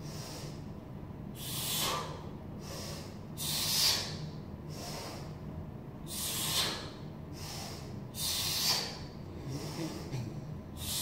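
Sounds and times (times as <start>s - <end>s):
man exhaling forcefully: 1.4s - 5.3s, 6.1s - 11.0s.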